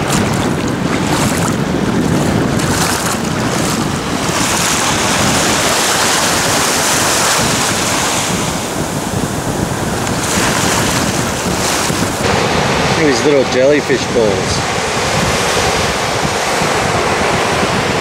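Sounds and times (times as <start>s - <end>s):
gentle waves lapping: 0.0s - 14.0s
wind buffeting microphone: 0.0s - 18.0s.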